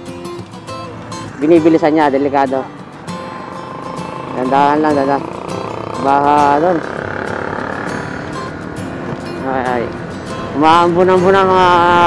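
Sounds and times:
motorcycle engine: 0:00.0 - 0:12.0.

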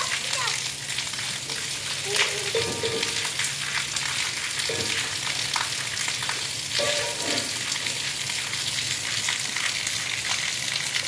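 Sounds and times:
child calling: 0:00.0 - 0:00.6, 0:02.0 - 0:02.6
rain falling: 0:00.0 - 0:11.0.

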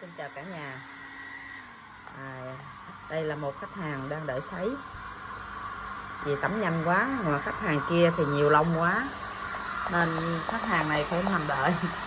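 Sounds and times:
hair dryer running: 0:00.0 - 0:12.0.

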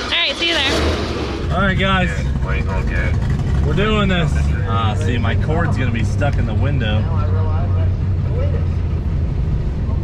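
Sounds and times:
car engine running at low revs: 0:00.0 - 0:10.0.

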